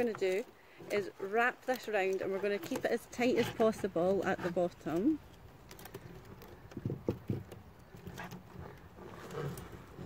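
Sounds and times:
wire rustling: 0.0 - 10.0.

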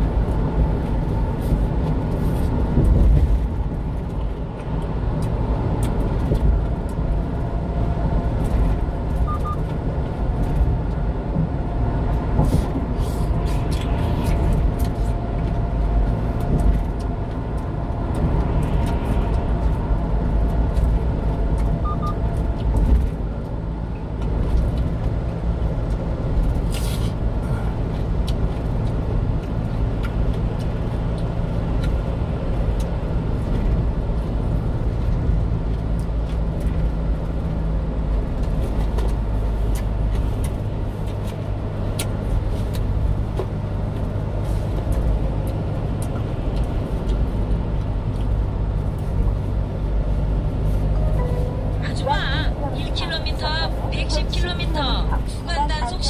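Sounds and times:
truck engine drone: 0.0 - 56.0
tyre and road noise: 0.0 - 56.0.

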